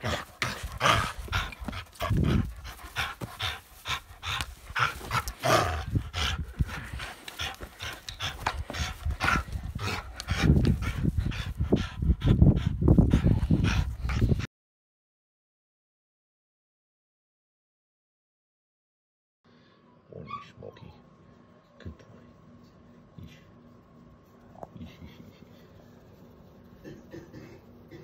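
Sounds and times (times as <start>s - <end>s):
dog breathing and play noises: 0.0s - 14.5s, 22.0s - 28.0s.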